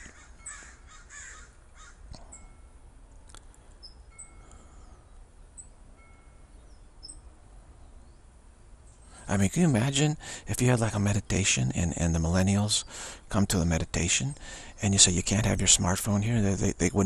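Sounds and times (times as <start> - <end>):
harsh bird calls: 0.0 - 2.4, 9.0 - 17.0
low steady hum: 0.0 - 17.0
high bird chirps: 6.4 - 8.3.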